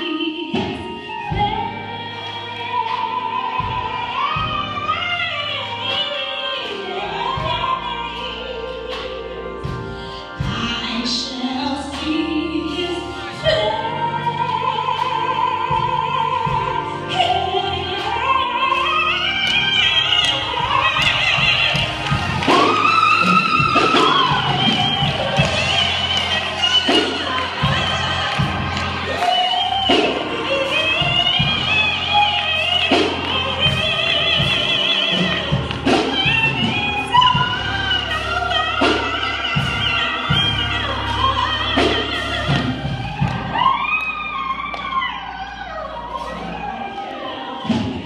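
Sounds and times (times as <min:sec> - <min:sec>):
keyboard accompaniment: 0:00.0 - 0:48.0
woman singing gospel: 0:00.0 - 0:48.0
low drum beats: 0:19.8 - 0:43.7.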